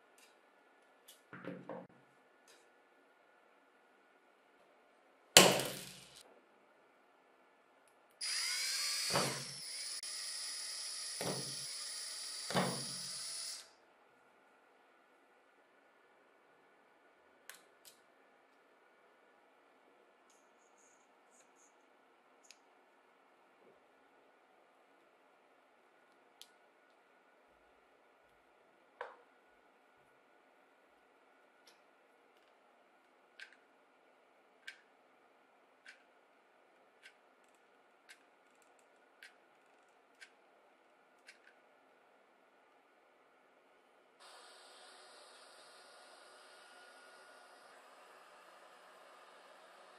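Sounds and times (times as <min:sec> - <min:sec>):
drill drilling through plastic: 0:08.2 - 0:13.7, 0:44.2 - 0:49.9.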